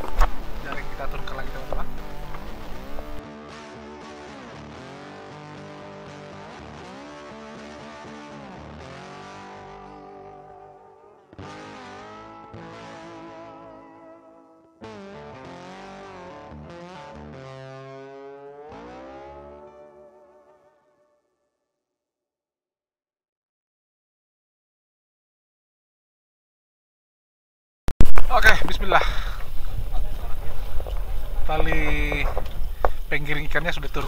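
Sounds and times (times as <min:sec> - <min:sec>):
guitar with bending notes: 0:00.0 - 0:21.3.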